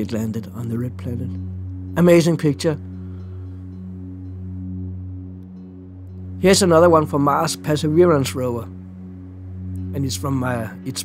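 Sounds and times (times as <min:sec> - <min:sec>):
low ambient drone music: 0:00.0 - 0:11.0.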